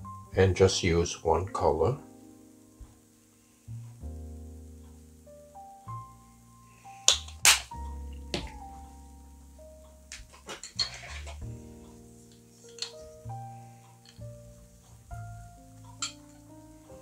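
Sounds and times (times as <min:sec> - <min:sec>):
gentle background music: 0:00.0 - 0:17.0.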